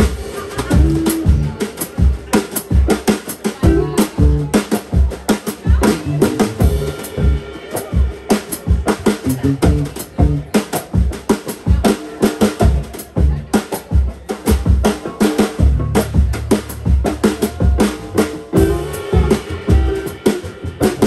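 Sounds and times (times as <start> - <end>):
amplified guitar: 0.0 - 1.7, 3.6 - 4.6, 8.8 - 10.5, 17.3 - 21.0
bass: 0.0 - 2.9, 3.6 - 5.1, 5.7 - 8.1, 8.7 - 11.2, 12.4 - 13.6, 14.4 - 21.0
drum kit beat: 0.0 - 21.0.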